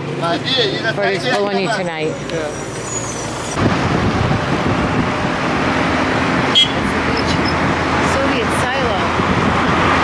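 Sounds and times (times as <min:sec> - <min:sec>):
car engines and tyres on road: 0:00.0 - 0:10.0.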